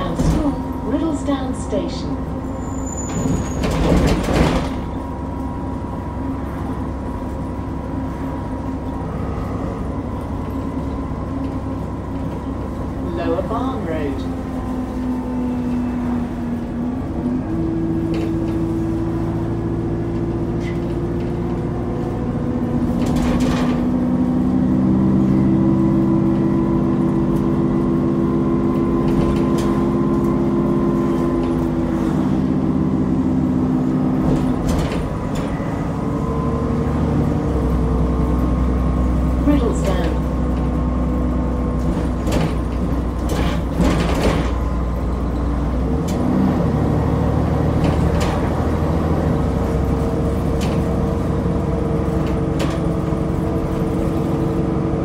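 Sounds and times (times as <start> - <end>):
bus engine drone: 0.0 - 55.0.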